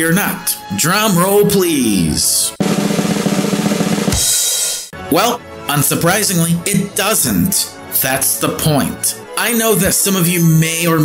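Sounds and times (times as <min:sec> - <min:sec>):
cymbal crash: 0:02.6 - 0:04.9
snare drum roll: 0:02.6 - 0:04.9.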